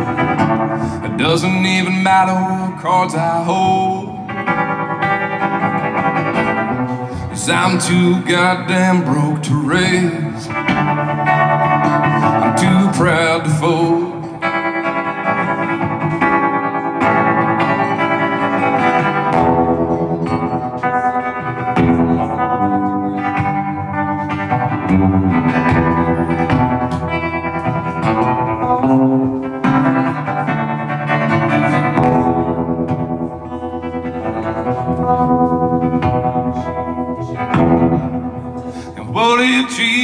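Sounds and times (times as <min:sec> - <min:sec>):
guitar strumming chords: 0:00.0 - 0:40.0.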